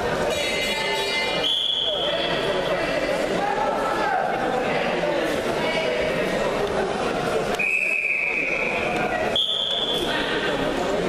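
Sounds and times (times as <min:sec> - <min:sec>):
crowd chatter in a hall: 0:00.0 - 0:11.0
referee's whistle blast: 0:01.3 - 0:02.1, 0:09.4 - 0:10.1.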